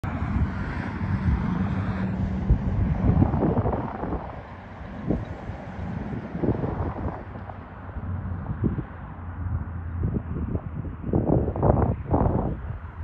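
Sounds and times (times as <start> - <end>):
distant locomotives rumbling: 0.0 - 11.7
wind buffeting microphone: 0.0 - 13.0.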